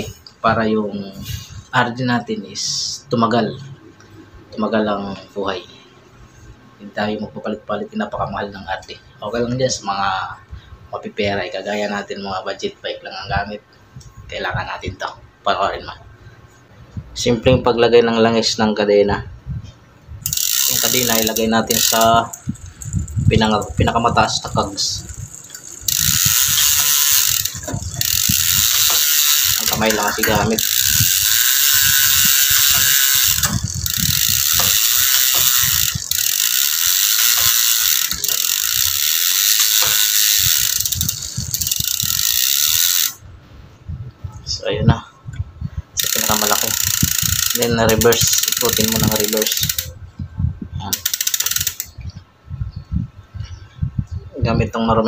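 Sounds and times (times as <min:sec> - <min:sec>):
bicycle freewheel clicking: 0:20.2 - 0:43.2, 0:46.0 - 0:50.0, 0:50.9 - 0:52.0.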